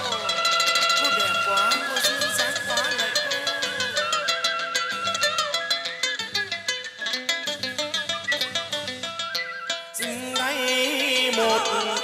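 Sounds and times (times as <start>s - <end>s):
sliding plucked lute notes: 0.0s - 12.0s.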